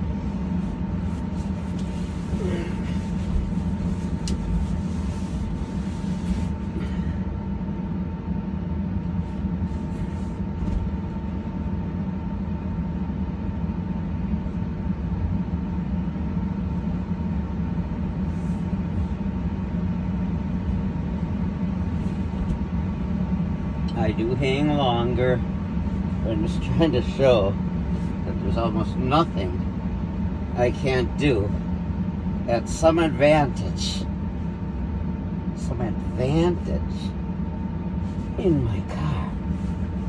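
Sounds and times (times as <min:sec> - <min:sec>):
car cabin rumble and hum: 0:00.0 - 0:40.0.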